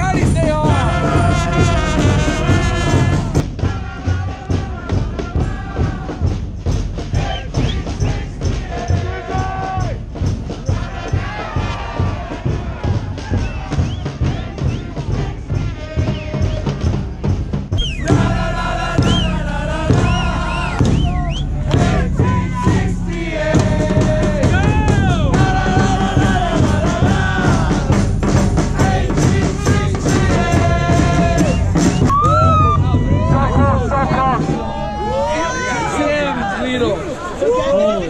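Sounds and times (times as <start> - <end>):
crowd singing a chant: 0.0 - 32.1
steady drum beat: 0.0 - 35.6.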